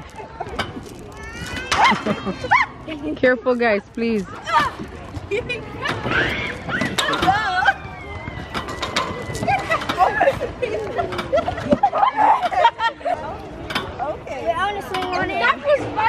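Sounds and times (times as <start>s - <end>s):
children laughing and squealing: 0.0s - 3.2s, 4.3s - 13.6s.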